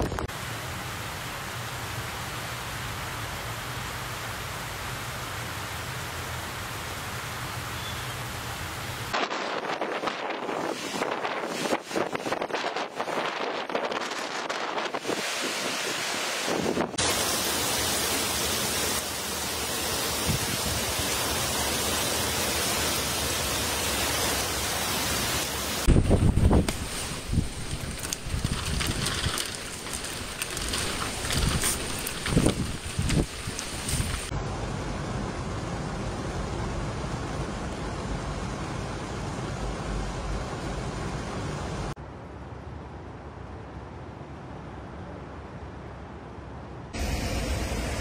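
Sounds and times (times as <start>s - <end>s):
torrential rain falling: 15.0s - 42.0s
close drips and splashes: 26.7s - 34.3s.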